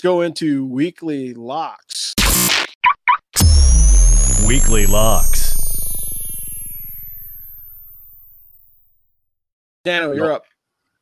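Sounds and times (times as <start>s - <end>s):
low buzzing synth note: 3.4s - 8.8s
thin high tone gliding upward: 3.4s - 8.8s.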